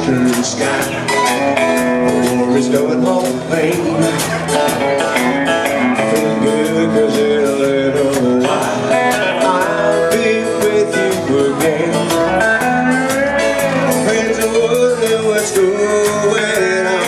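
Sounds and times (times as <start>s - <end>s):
drums keeping steady beat: 0.0s - 17.0s
electric and acoustic guitars: 0.0s - 17.0s.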